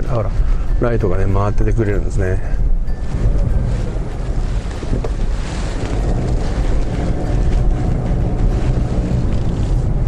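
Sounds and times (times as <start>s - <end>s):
engine and road noise in car: 0.0s - 10.0s.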